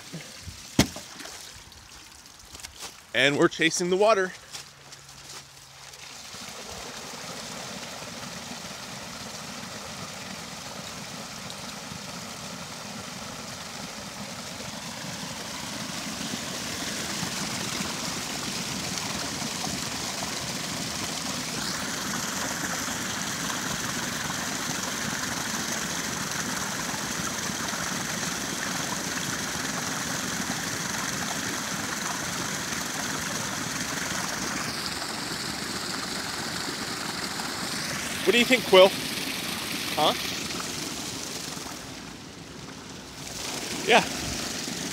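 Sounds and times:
water pouring onto waterwheel: 0.0s - 3.1s, 5.6s - 44.9s
water rushing down flume: 5.8s - 44.9s.

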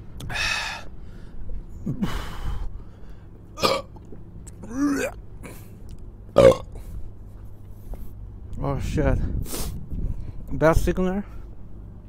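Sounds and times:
man breathing: 0.2s - 3.4s, 9.3s - 10.5s.

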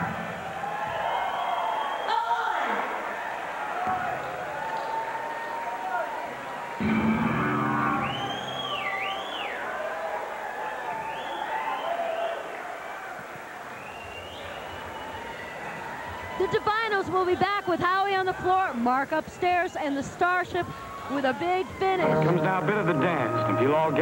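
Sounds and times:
crowd cheering and calling out: 14.6s - 24.0s.

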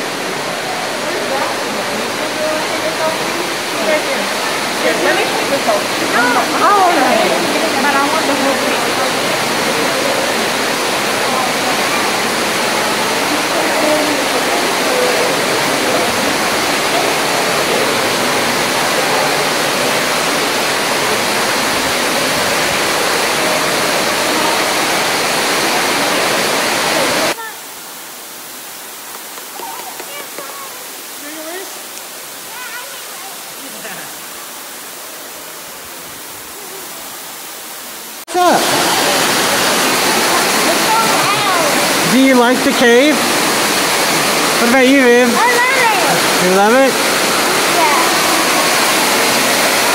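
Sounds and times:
faint voices: 0.0s - 27.7s
waterfall rushing: 0.0s - 49.9s.

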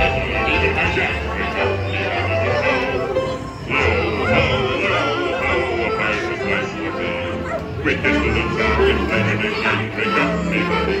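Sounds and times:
group singing sea shanty: 0.0s - 11.0s.

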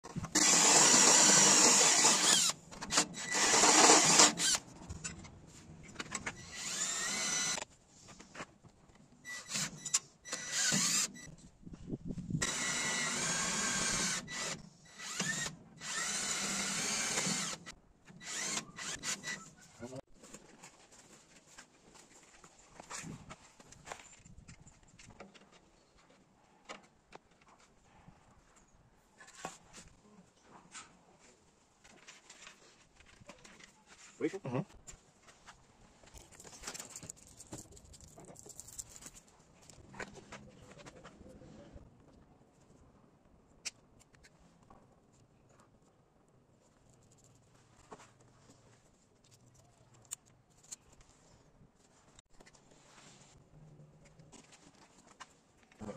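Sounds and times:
cordless drill whining: 0.2s - 4.6s, 6.3s - 7.7s, 9.3s - 11.3s, 12.4s - 19.6s
faint clicks and handling: 43.6s - 52.7s.

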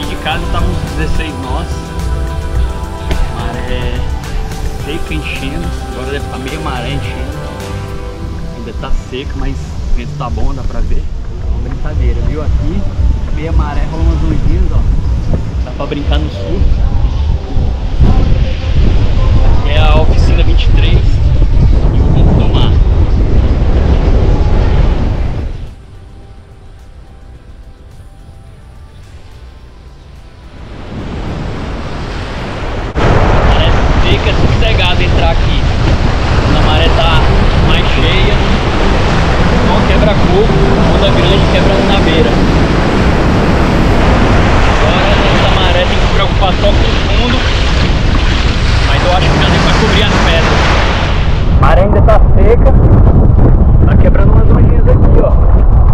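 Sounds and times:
surf washing and breaking: 0.0s - 26.0s, 30.4s - 55.9s
wind buffeting microphone: 0.0s - 29.4s, 30.1s - 55.9s.

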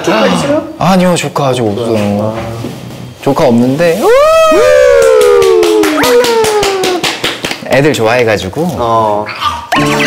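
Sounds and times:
people calling a long cheer: 4.1s - 7.1s
hand clapping: 5.0s - 7.8s.

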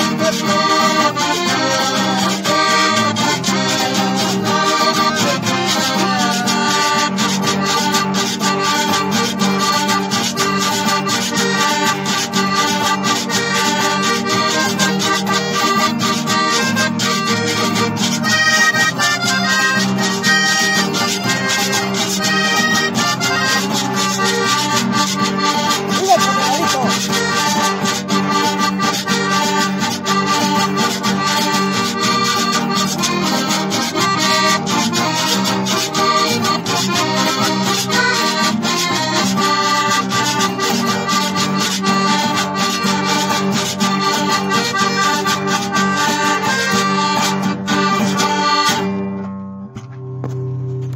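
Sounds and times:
accordion-led band playing: 0.0s - 50.9s
guitar: 0.0s - 50.9s.

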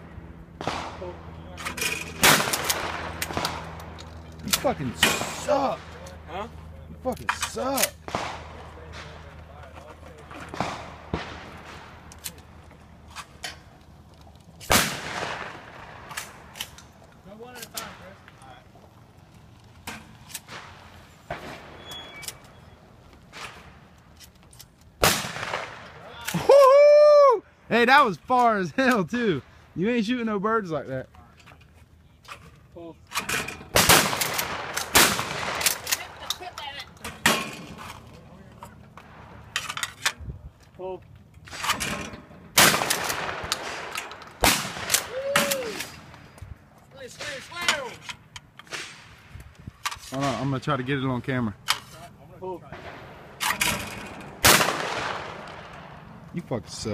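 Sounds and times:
shotgun shot: 0.6s - 1.2s, 2.2s - 3.7s, 8.1s - 9.3s, 10.5s - 11.9s, 14.7s - 16.1s, 25.0s - 25.9s, 33.7s - 35.9s, 42.6s - 45.6s, 54.4s - 55.7s
man shouting: 26.1s - 28.2s, 45.1s - 45.8s.

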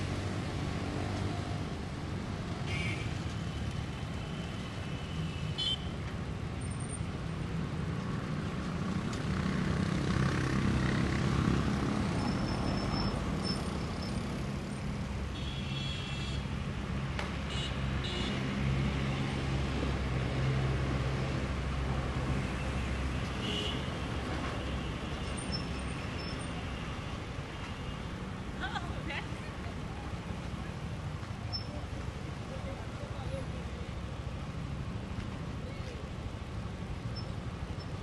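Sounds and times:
passing cars and trucks: 0.0s - 38.0s.

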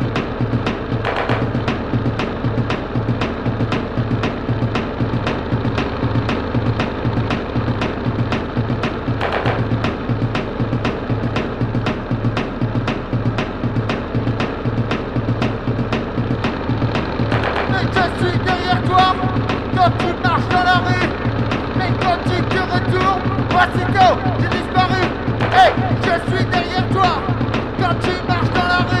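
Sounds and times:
electronic dance music: 0.0s - 29.0s.

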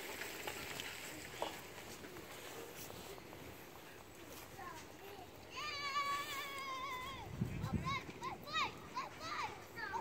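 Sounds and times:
children's high-pitched cries: 5.5s - 10.0s.

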